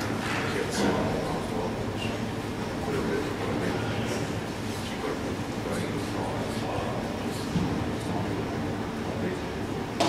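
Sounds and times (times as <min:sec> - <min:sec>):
faint murmur of voices: 0:00.0 - 0:10.0
low room hum: 0:00.0 - 0:10.0.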